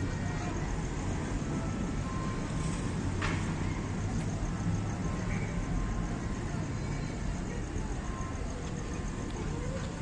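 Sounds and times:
faint distant voices: 0.0s - 10.0s
road traffic rumble: 0.0s - 10.0s.

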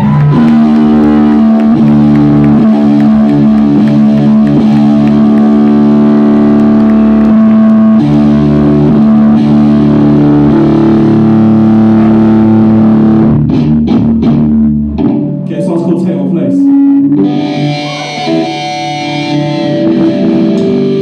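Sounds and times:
live rock band: 0.0s - 15.5s, 16.5s - 21.0s
distorted electric guitar: 0.0s - 21.0s.

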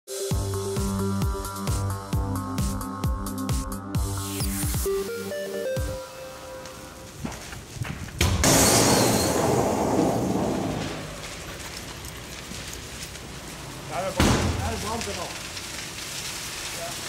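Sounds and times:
car fire crackling: 0.2s - 2.8s, 4.0s - 17.0s
rushing flames: 3.5s - 17.0s
electronic station jingle: 4.2s - 7.0s
sharp crack: 6.4s - 17.0s.

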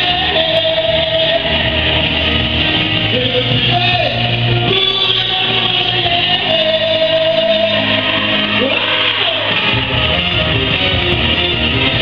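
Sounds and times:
person singing: 0.0s - 9.9s
electric guitar: 0.0s - 12.0s
live rock music: 0.0s - 12.0s.

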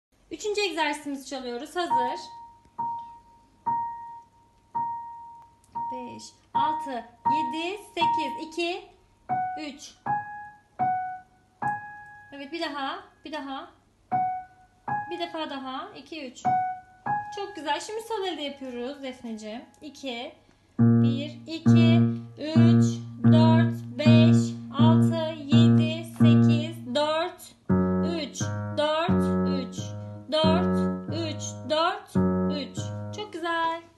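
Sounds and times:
digital piano single notes: 1.9s - 8.6s, 9.3s - 12.4s, 14.1s - 15.3s, 16.4s - 19.8s, 20.8s - 33.4s
slow low piano notes: 20.8s - 33.2s.

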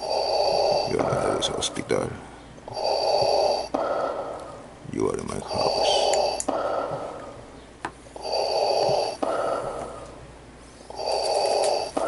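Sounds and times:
man breathing heavily into mask: 0.0s - 4.7s, 5.5s - 7.4s, 8.2s - 12.0s.

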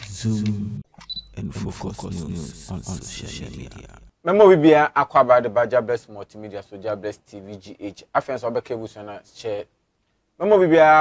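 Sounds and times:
person speaking: 0.0s - 4.6s.

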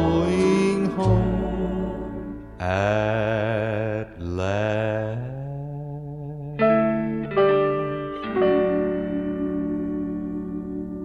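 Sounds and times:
low sustained accompaniment: 0.0s - 4.5s, 6.6s - 11.0s
person singing with vibrato: 0.0s - 11.0s.

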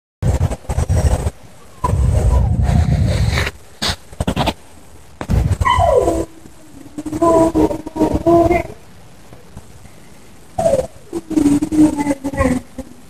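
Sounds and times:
loud low rumbling noise: 0.2s - 13.0s
dog whining: 5.6s - 6.4s, 10.6s - 12.6s.

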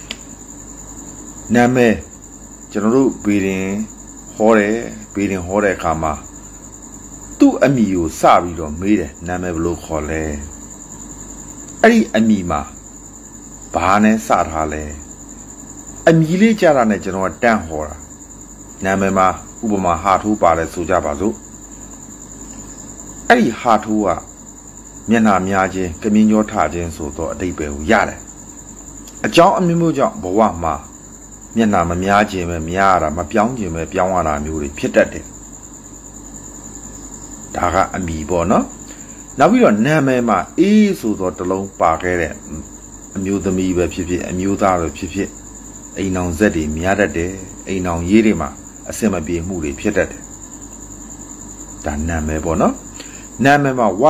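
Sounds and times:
crickets trilling: 0.0s - 54.0s
insects chirring: 0.0s - 54.0s
man speaking: 1.5s - 2.1s, 2.7s - 6.3s, 7.4s - 10.6s, 11.8s - 12.8s, 13.7s - 15.1s, 16.1s - 18.1s, 18.8s - 21.4s, 23.3s - 24.3s, 25.1s - 28.3s, 29.2s - 30.9s, 31.6s - 35.3s, 37.5s - 38.8s, 39.4s - 45.4s, 46.0s - 50.2s, 51.8s - 52.8s, 53.4s - 54.0s
man talking: 1.5s - 2.1s, 2.7s - 6.3s, 7.4s - 10.5s, 11.8s - 12.8s, 13.8s - 15.1s, 16.1s - 18.0s, 18.8s - 21.4s, 23.3s - 24.3s, 25.1s - 28.3s, 29.2s - 30.9s, 31.6s - 35.3s, 37.6s - 38.8s, 39.4s - 45.4s, 46.0s - 50.2s, 51.8s - 52.8s, 53.4s - 54.0s.

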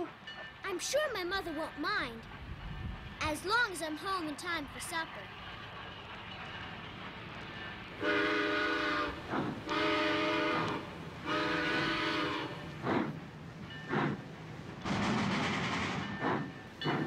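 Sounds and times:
steam chuffs: 0.9s - 17.0s
cartoon steam locomotive whistle: 8.0s - 12.6s.

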